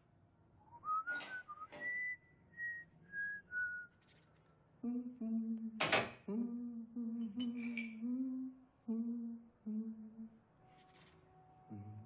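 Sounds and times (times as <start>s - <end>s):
man humming: 4.8s - 5.7s, 6.3s - 10.3s, 11.7s - 12.0s.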